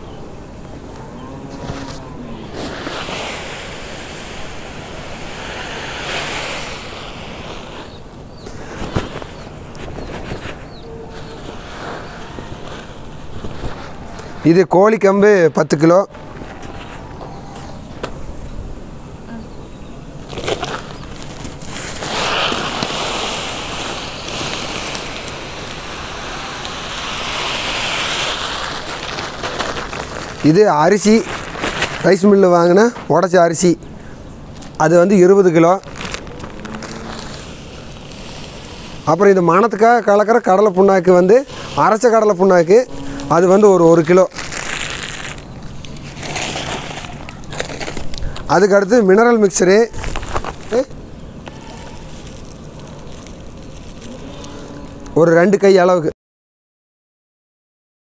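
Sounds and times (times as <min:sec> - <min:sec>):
grain pouring: 0:02.4 - 0:08.0, 0:20.6 - 0:32.4, 0:34.7 - 0:48.8, 0:51.5 - 0:54.4.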